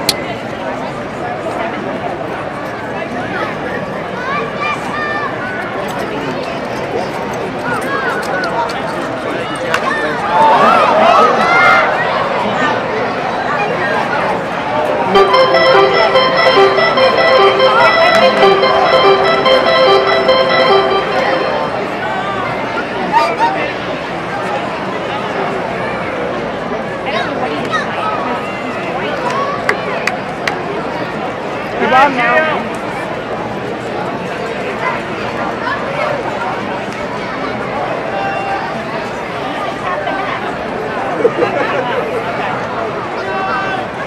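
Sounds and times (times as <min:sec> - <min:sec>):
crowd chatter: 0:00.0 - 0:22.5
stadium organ playing: 0:15.1 - 0:22.2.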